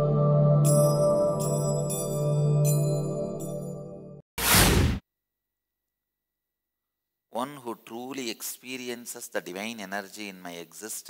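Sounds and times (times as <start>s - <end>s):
whoosh sound effect: 4.4s - 5.0s.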